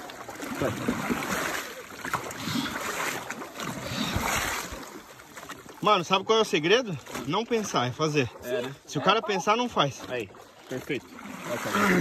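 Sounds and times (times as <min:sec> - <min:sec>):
paddle splashing in river water: 0:00.0 - 0:12.0.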